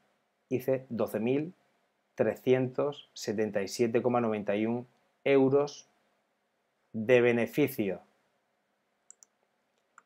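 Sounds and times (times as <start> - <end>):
faint short clicks: 9.1 - 10.0.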